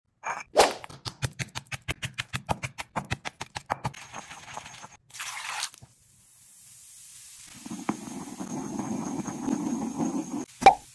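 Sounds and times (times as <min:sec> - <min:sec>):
pestle pounding in stone mortar: 0:01.0 - 0:04.7
pestle swirling through liquid: 0:07.5 - 0:10.5.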